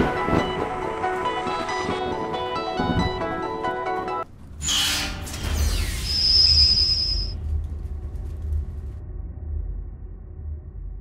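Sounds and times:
music: 0.0s - 4.3s, 7.4s - 11.0s
deep rumble: 5.2s - 11.0s.

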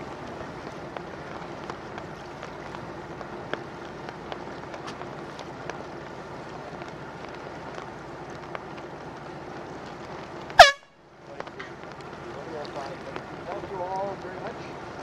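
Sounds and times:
loud air horn blast: 10.6s - 10.9s.

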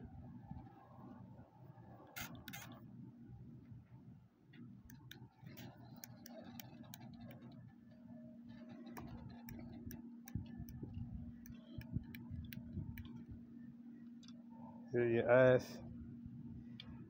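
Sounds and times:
steady hum: 0.0s - 17.0s.

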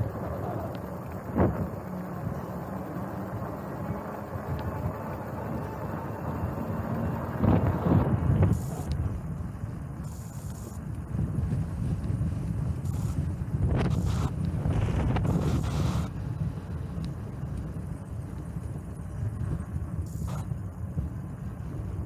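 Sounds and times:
wind buffeting microphone: 0.0s - 10.2s, 10.8s - 22.0s.

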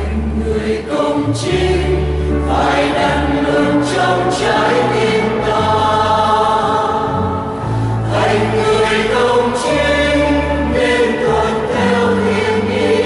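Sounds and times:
choir singing a hymn: 0.0s - 13.0s
sustained low bass notes: 0.0s - 13.0s.

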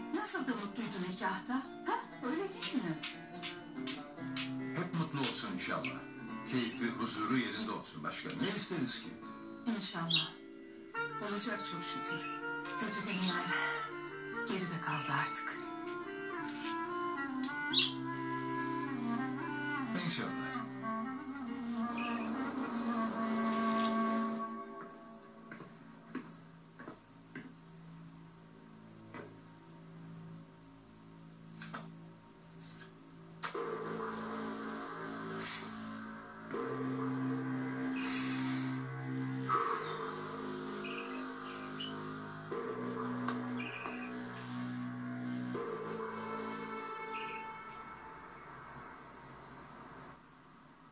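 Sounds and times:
dramatic background music: 8.4s - 26.0s, 33.4s - 49.5s
short hissing sounds: 34.2s - 36.1s, 38.0s - 38.9s.

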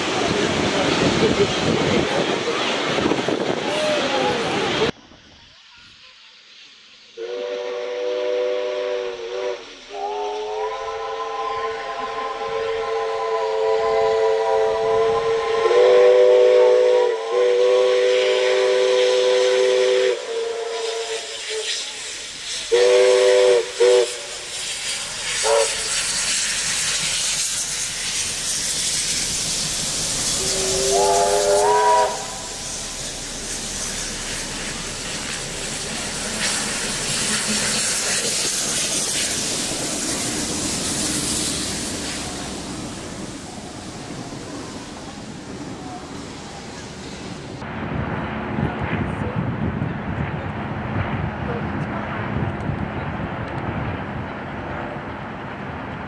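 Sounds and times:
steam hissing: 0.0s - 47.7s
steam locomotive whistles: 7.0s - 47.2s.

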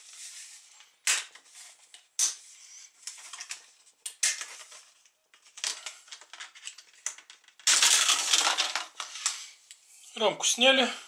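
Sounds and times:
plastic crackling: 3.1s - 9.4s.

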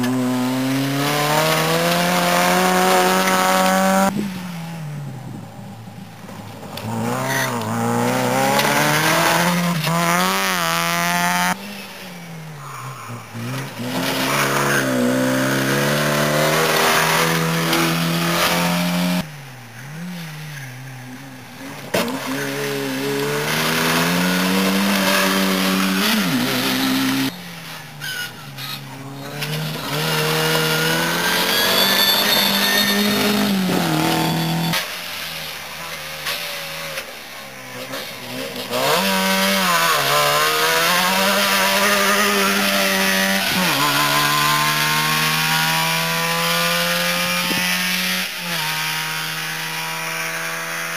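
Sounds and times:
rally car engines revving: 0.0s - 50.9s.

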